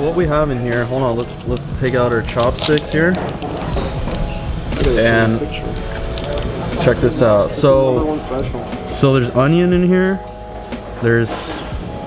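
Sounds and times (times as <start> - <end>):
restaurant murmur: 0.0 - 9.7
paper crackle: 1.2 - 3.9, 4.8 - 6.6
paper wrapper torn open: 2.2 - 3.7.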